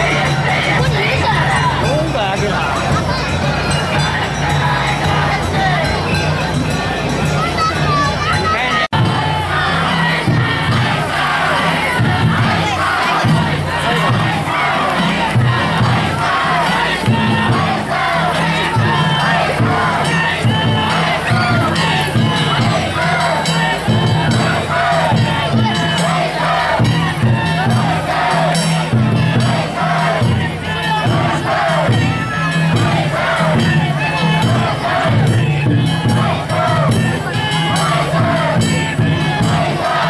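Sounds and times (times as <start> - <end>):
crowd of men shouting and chanting: 0.0 - 40.0.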